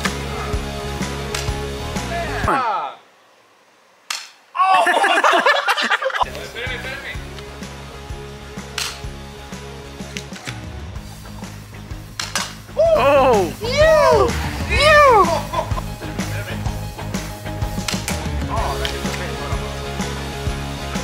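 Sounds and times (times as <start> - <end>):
music with steady beat: 0.0 - 2.2, 6.3 - 21.0
loud shouting: 4.5 - 5.4, 12.8 - 15.6.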